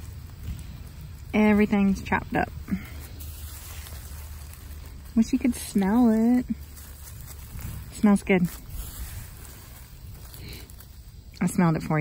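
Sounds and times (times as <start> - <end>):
silage rustling and pattering: 0.0 - 12.0
steady low rumble: 0.0 - 12.0.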